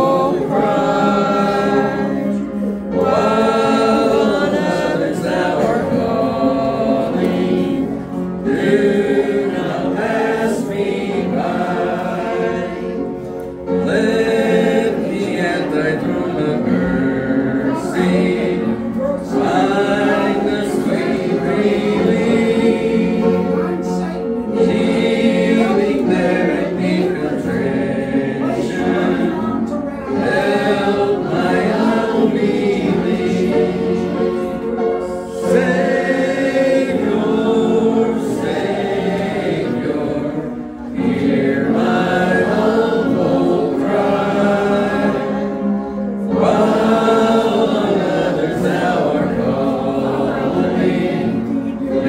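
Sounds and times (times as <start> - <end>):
congregation singing a hymn: 0.0 - 52.0.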